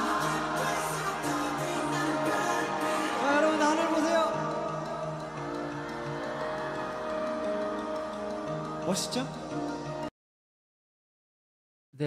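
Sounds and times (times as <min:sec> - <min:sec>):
backing music chords: 0:00.0 - 0:10.1.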